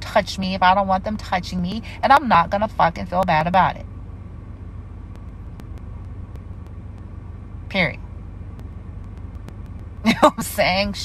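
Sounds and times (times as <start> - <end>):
low background hum: 0.0 - 11.0
faint ticks: 5.1 - 7.1, 8.5 - 10.0.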